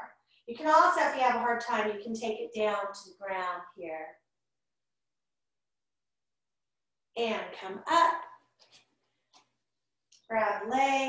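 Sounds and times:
woman speaking: 0:00.0 - 0:04.2, 0:07.2 - 0:08.4, 0:10.3 - 0:11.0.

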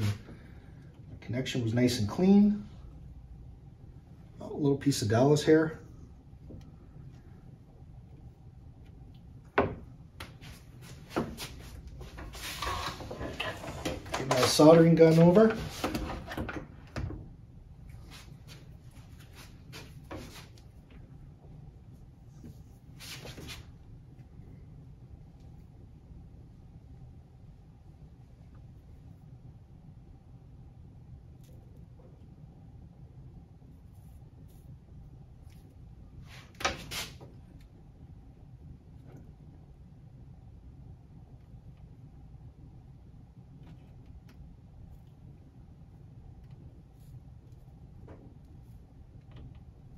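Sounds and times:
faint handling sounds: 0:00.0 - 0:16.4, 0:17.7 - 0:26.1, 0:33.3 - 0:39.6, 0:43.4 - 0:49.9
low steady hum: 0:00.0 - 0:49.9.

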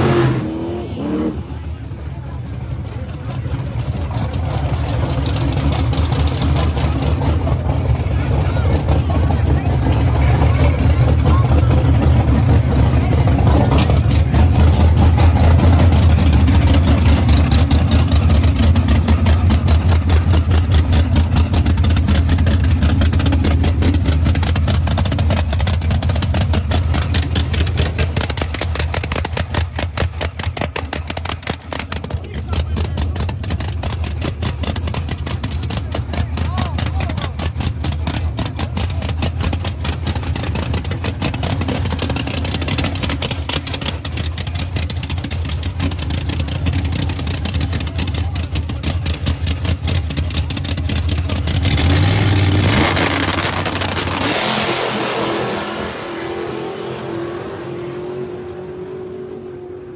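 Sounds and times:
cars accelerating away: 0:00.0 - 0:02.3, 0:51.2 - 0:59.9
drag race cars idling: 0:00.0 - 0:59.9.

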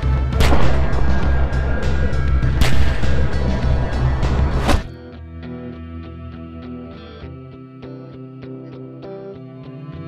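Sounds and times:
action film music with pulsing bass: 0:00.0 - 0:05.0
sharp bangs: 0:00.2 - 0:04.9.

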